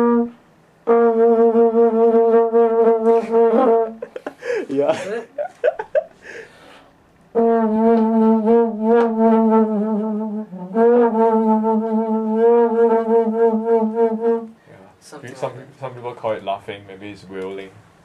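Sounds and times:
french horn wavering notes: 0:00.0 - 0:04.0, 0:07.3 - 0:14.6.

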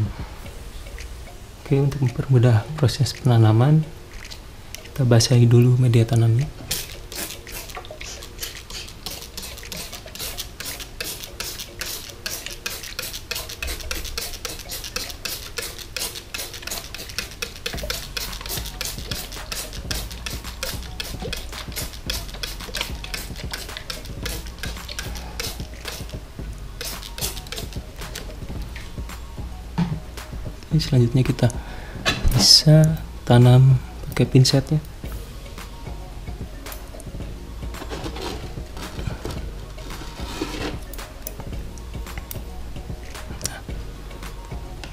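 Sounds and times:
spray bottle hissing: 0:06.6 - 0:26.2, 0:26.8 - 0:28.4, 0:37.8 - 0:41.0.

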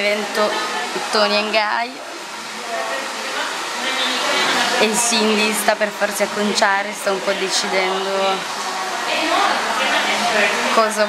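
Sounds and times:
hair dryer blowing: 0:00.1 - 0:11.0.

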